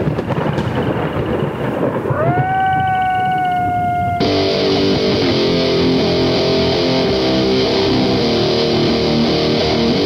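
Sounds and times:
rolling thunder: 0:00.0 - 0:05.5
music: 0:04.2 - 0:10.0.

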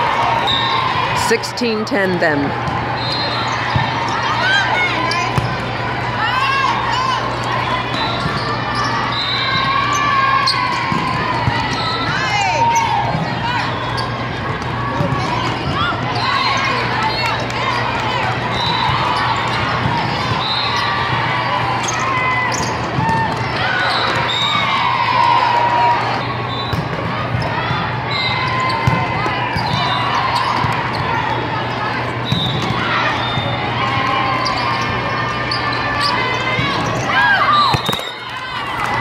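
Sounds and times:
many voices: 0:00.0 - 0:39.0
sneakers squeaking on court: 0:34.4 - 0:38.2.

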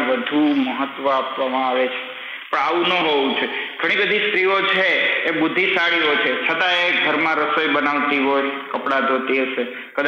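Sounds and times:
man lecturing: 0:00.0 - 0:10.0.

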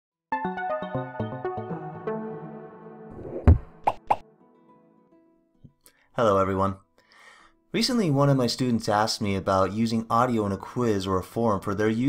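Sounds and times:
short whooshes: 0:03.1 - 0:04.2.

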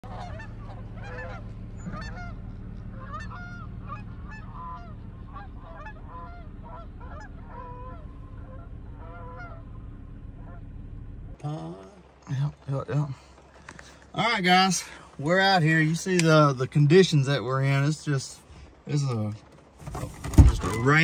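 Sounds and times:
geese honking in flight: 0:00.0 - 0:10.7
steady low rumble: 0:00.0 - 0:14.1.

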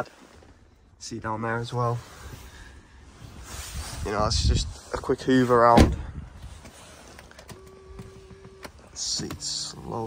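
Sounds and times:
electric seat motor humming: 0:07.5 - 0:10.0.

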